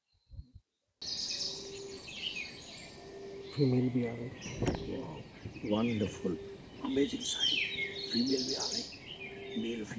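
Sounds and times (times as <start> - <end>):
birds chirping: 0.0 - 9.9.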